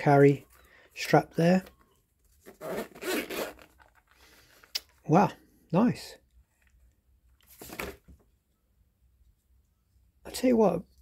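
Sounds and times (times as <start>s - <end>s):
zip being pulled open: 2.4s - 4.0s.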